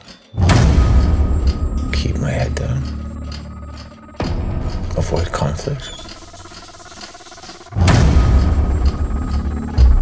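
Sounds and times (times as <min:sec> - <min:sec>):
deep bass score sound: 0:00.4 - 0:06.8, 0:07.7 - 0:10.0
shower head spraying water: 0:05.9 - 0:07.8.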